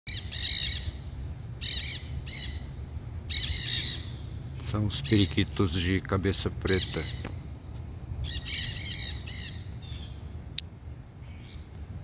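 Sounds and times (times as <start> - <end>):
parakeets calling: 0.1 - 10.3, 11.2 - 11.7.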